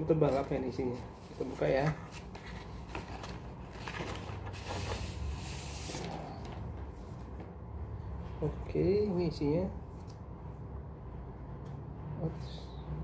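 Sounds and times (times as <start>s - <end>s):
envelope paper rustling: 0.2s - 6.8s.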